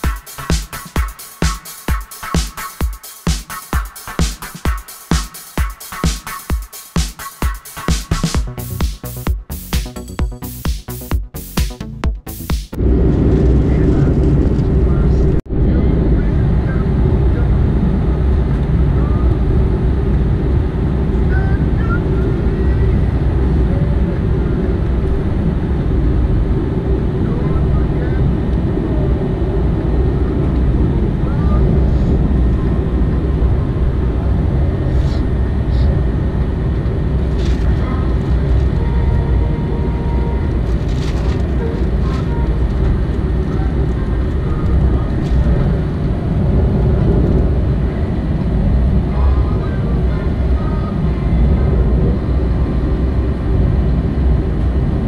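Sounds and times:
jet engine and airflow noise: 0:12.3 - 0:55.0.

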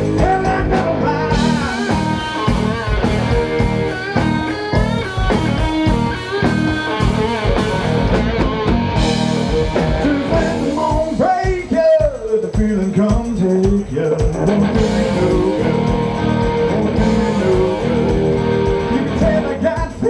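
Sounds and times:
electric guitar bending notes: 0:00.0 - 0:11.7, 0:14.2 - 0:20.0
live rock band playing: 0:00.0 - 0:20.0.

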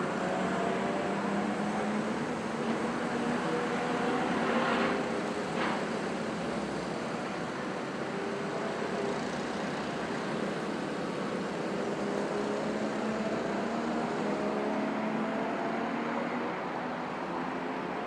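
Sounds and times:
steady noisy hiss: 0:00.0 - 0:15.1
go-kart engines: 0:00.0 - 0:18.0.

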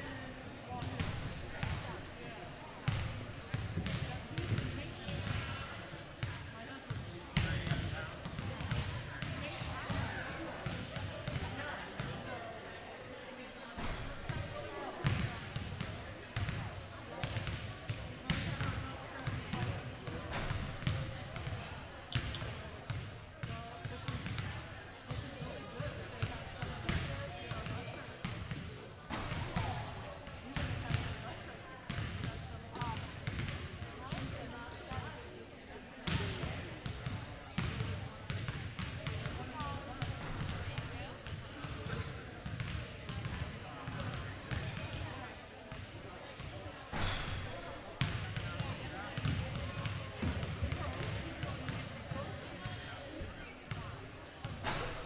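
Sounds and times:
people talking: 0:00.0 - 0:55.0.

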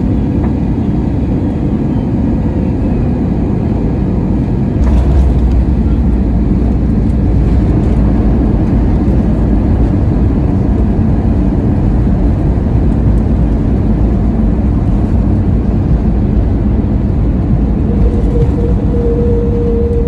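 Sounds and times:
airplane cabin rush: 0:00.0 - 0:20.0
tyres rumbling on runway: 0:03.1 - 0:20.0.

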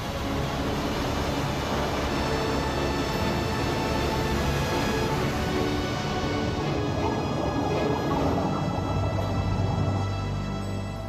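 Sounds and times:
held music notes: 0:00.0 - 0:11.0
large waves breaking: 0:00.0 - 0:11.0.

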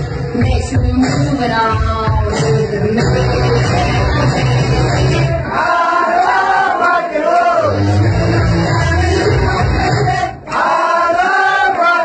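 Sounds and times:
dance track bass and beat: 0:00.0 - 0:05.4
many voices singing together: 0:05.3 - 0:12.0.

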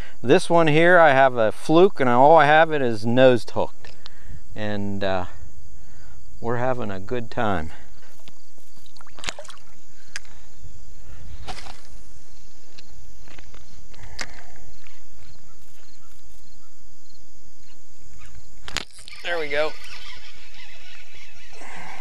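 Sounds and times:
high insect chorus: 0:00.0 - 0:22.0
rod casting rush: 0:18.2 - 0:22.0.

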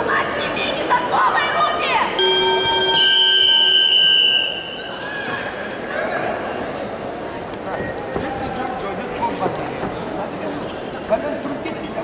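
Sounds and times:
timer buzzer sounding: 0:02.2 - 0:04.0
whistle long steady blast: 0:02.2 - 0:05.1.

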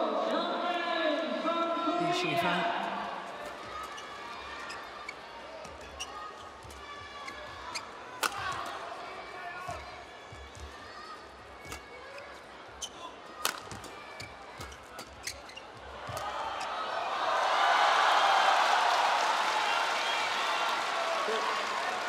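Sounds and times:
racket striking shuttlecock: 0:08.2 - 0:08.8, 0:13.4 - 0:14.0
crowd cheering and clapping: 0:15.9 - 0:22.0.

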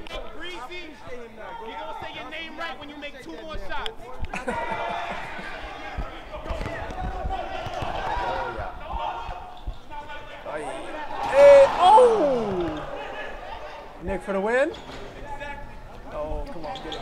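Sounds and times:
people talking and shouting: 0:00.0 - 0:17.0
shouts falling in pitch: 0:10.7 - 0:13.0.

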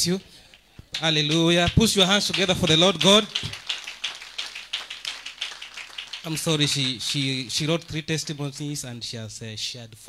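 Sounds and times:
people clapping: 0:00.5 - 0:08.9.

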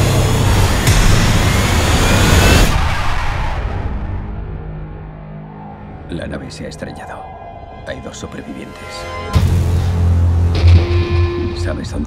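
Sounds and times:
spaceship crash rushing noise: 0:00.0 - 0:05.8
deep rumble: 0:00.0 - 0:06.6.

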